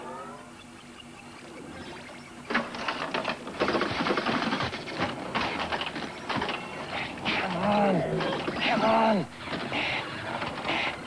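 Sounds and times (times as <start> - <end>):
pinball machine clattering: 2.5 - 10.7.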